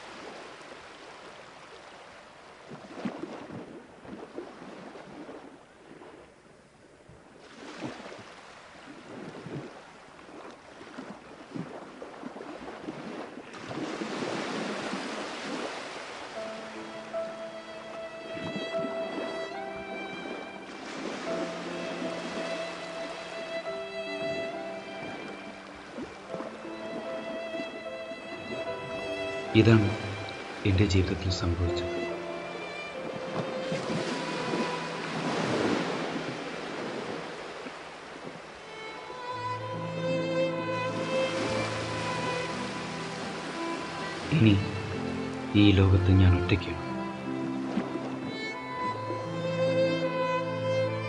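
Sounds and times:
sea surf on beach: 0.0 - 51.0
wind buffeting microphone: 8.8 - 16.3, 18.2 - 19.2, 33.0 - 38.7.

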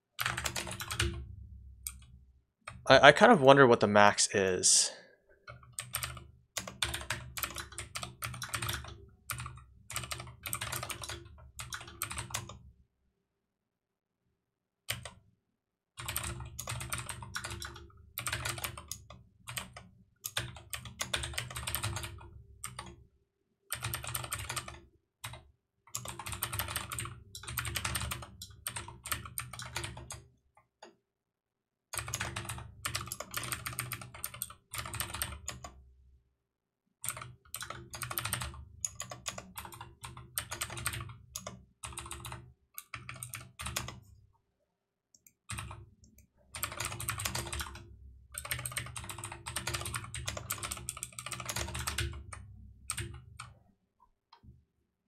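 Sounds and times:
typing on a keyboard: 0.2 - 1.2, 5.5 - 12.6, 14.9 - 15.2, 16.0 - 22.9, 23.7 - 30.2, 32.0 - 35.7, 37.0 - 44.0, 45.3 - 45.8, 46.6 - 53.5.

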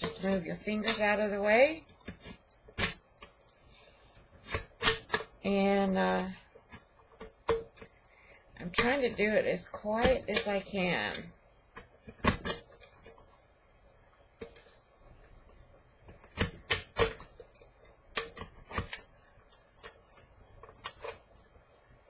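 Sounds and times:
craft knife cutting metal can: 0.0 - 1.1, 2.0 - 3.1, 4.4 - 5.3, 11.8 - 13.2, 16.2 - 17.4, 18.1 - 21.2.

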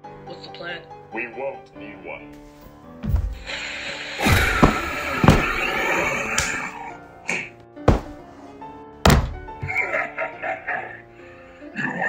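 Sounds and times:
background music: 0.0 - 12.0
heavy thunk of a hit: 3.0 - 3.5, 4.2 - 5.7, 7.9 - 8.2, 9.0 - 9.8.

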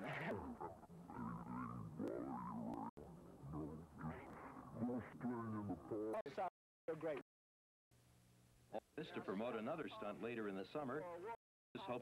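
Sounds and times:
man's drawn-out wavering voice: 0.0 - 6.2.

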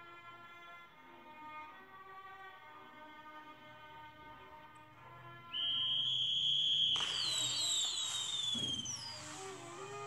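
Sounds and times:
falling whistling tones: 5.5 - 10.0
shrill whistle blown: 5.5 - 10.0
fireworks hissing: 6.4 - 10.0.

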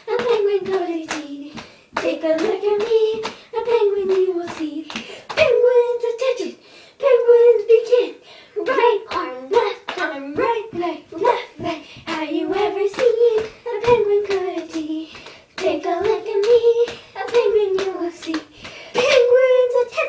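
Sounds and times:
girls singing: 0.0 - 20.0
sharp hand slaps: 0.2 - 3.4.

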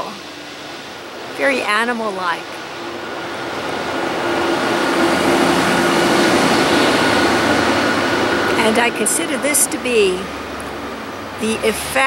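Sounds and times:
loud motor rushing with low hum: 0.0 - 12.0.

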